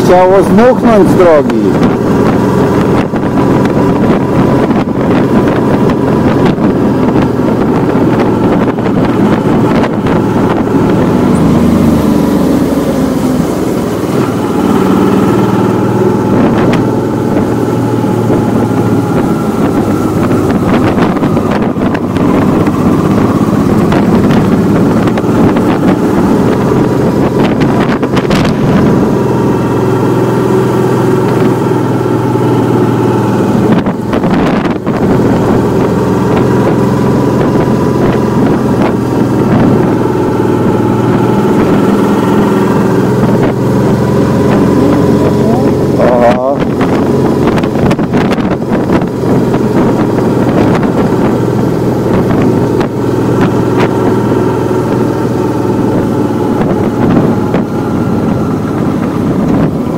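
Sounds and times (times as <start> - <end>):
motorcycle engine running: 0.0 - 59.9
wind rushing over microphone: 0.0 - 59.9.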